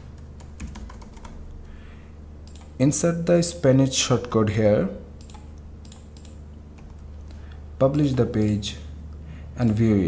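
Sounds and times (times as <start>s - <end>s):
faint low hum: 0.0s - 10.0s
keyboard typing: 0.2s - 1.4s, 2.4s - 2.8s.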